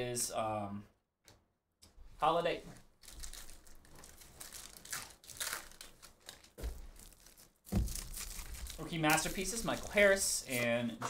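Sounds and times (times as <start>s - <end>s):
foil wrapper tearing and crinkling: 3.0s - 10.7s.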